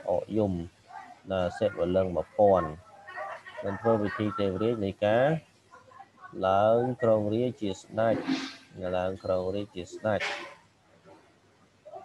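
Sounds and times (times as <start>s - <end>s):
man talking: 0.0s - 2.8s, 3.6s - 5.5s, 6.4s - 10.4s.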